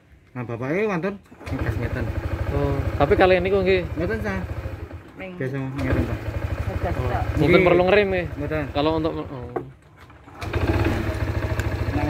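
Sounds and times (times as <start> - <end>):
scooter engine starting and idling: 1.4 - 12.0.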